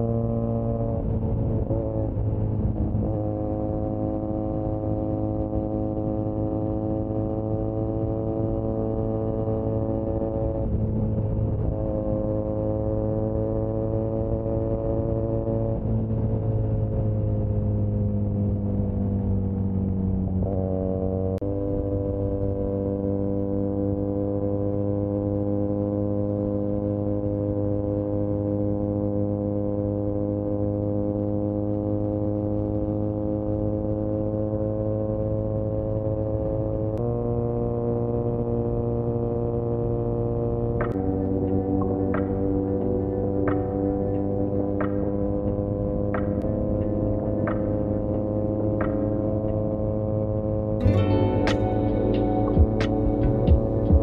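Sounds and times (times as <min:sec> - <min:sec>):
motorcycle engine cruising: 0:00.0 - 0:54.0.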